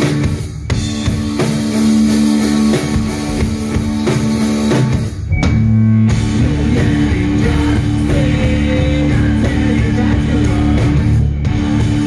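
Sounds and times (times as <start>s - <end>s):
drum kit: 0.0s - 12.0s
electric guitar: 0.0s - 12.0s.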